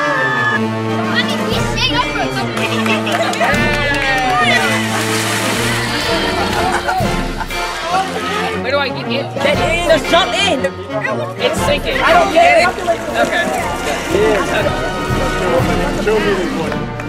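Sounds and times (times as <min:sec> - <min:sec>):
children's voices: 0:01.0 - 0:08.6
water splashing: 0:02.5 - 0:08.4, 0:12.0 - 0:16.4
music with held bass notes: 0:11.5 - 0:17.0.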